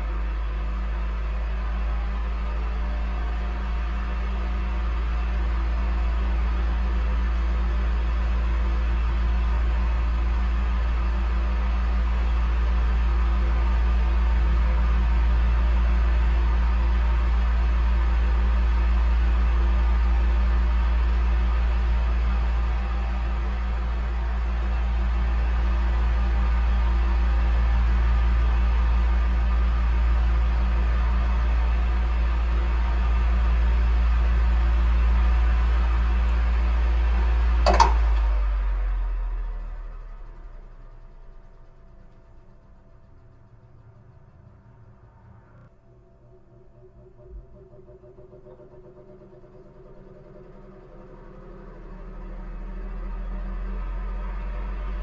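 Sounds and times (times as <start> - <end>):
electric fan humming: 36.1 - 38.8
sharp click: 37.7 - 38.2.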